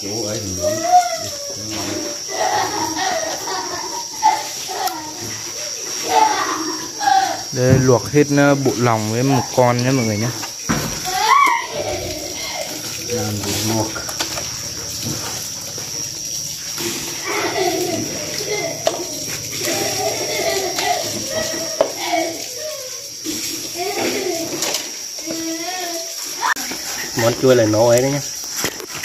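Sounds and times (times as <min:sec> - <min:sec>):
wet squelching and splashing: 0:01.1 - 0:29.0.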